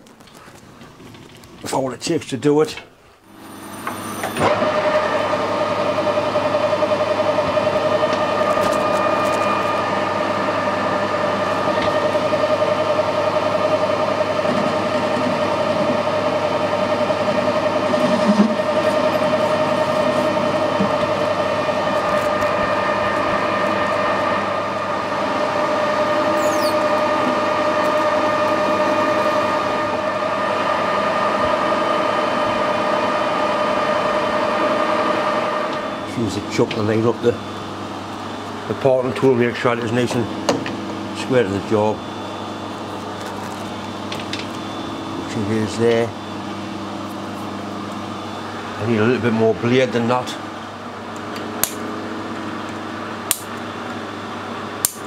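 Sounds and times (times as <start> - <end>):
metal lathe whining: 3.3 - 53.3.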